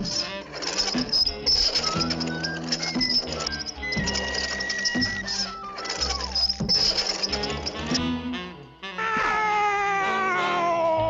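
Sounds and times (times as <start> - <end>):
cartoon cat-like yowl: 9.0 - 11.0.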